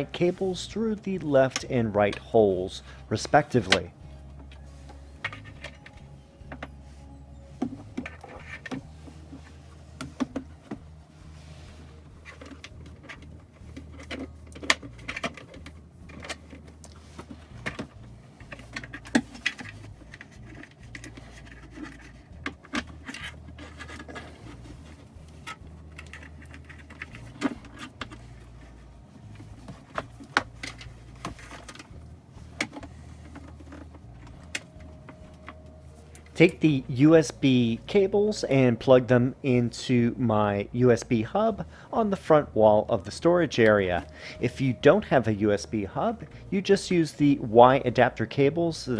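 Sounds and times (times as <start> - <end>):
low background rumble: 0.0 - 48.9
plastic clicks and rattles: 12.3 - 24.4.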